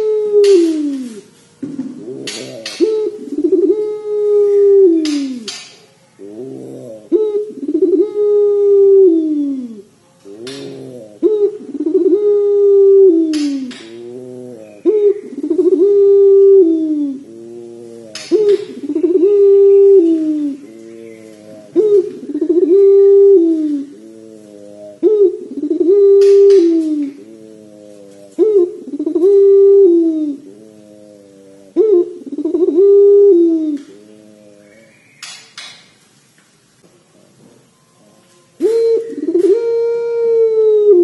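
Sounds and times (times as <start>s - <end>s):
dove cooing: 0.0s - 35.7s, 37.0s - 41.0s.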